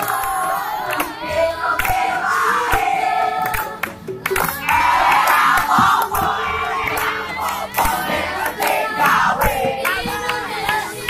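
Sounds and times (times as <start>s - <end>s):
group singing together loudly: 0.0s - 11.0s.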